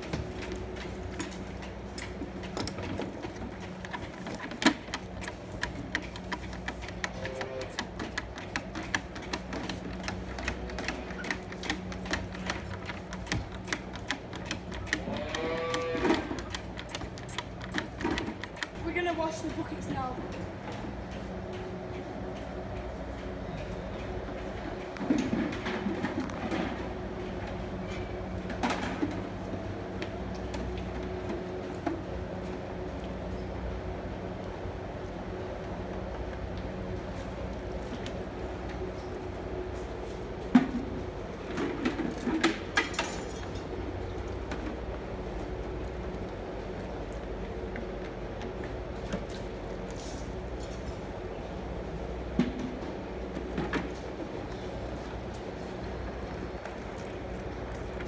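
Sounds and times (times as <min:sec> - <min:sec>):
steady mechanical hum: 0:00.0 - 0:58.0.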